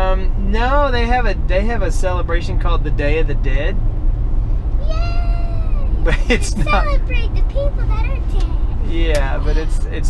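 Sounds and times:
car rumble inside cabin: 0:00.0 - 0:10.0.

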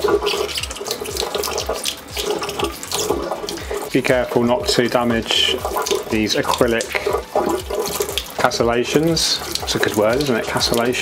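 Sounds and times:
tap water running into sink: 0:00.0 - 0:11.0
toothbrush scrubbing plastic: 0:00.0 - 0:11.0.

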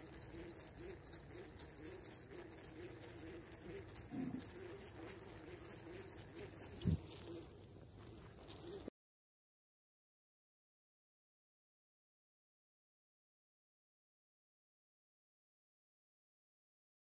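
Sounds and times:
dove cooing: 0:00.0 - 0:08.9
faint high-pitched drone: 0:00.0 - 0:08.9.

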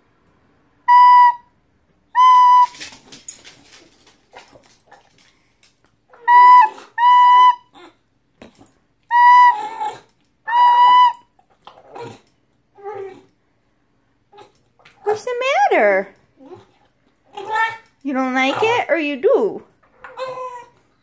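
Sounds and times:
dog whining and howling: 0:06.1 - 0:08.0, 0:09.1 - 0:12.2, 0:16.4 - 0:17.9, 0:20.0 - 0:20.8.

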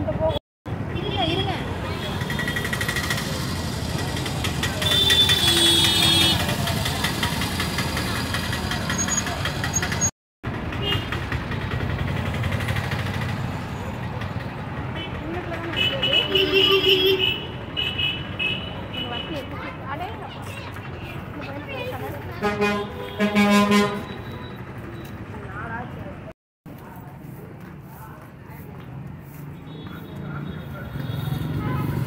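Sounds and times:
motorcycles running: 0:00.8 - 0:26.2, 0:27.0 - 0:32.0.

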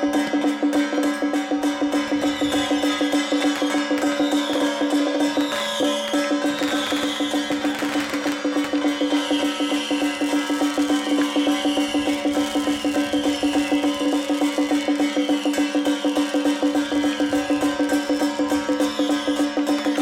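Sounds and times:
drum and gongs beaten fast: 0:00.0 - 0:20.0.

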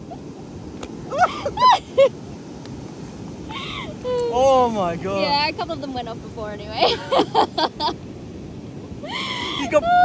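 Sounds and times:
wind and surf hiss: 0:00.0 - 0:10.0.

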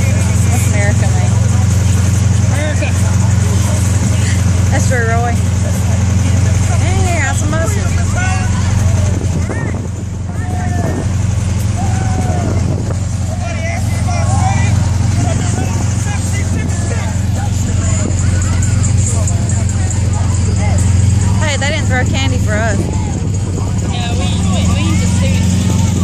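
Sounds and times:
onlookers chatting and calling out: 0:00.0 - 0:26.0
vehicle engines humming: 0:00.0 - 0:26.0.

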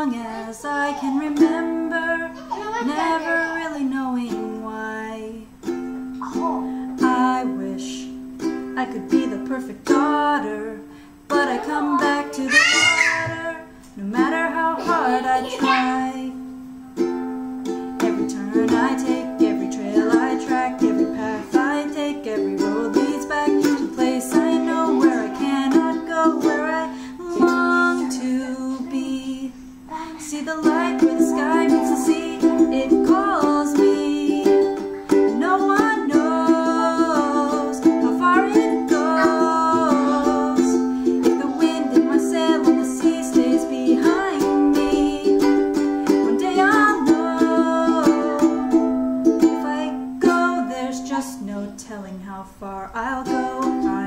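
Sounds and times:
woman singing: 0:00.0 - 0:16.6, 0:17.7 - 0:54.0
ukulele strumming chords: 0:00.0 - 0:52.2, 0:52.9 - 0:54.0.

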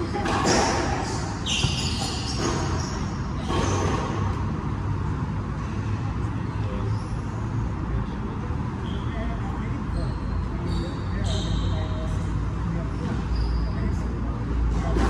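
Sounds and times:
ball hitting walls and floor: 0:00.1 - 0:04.4.

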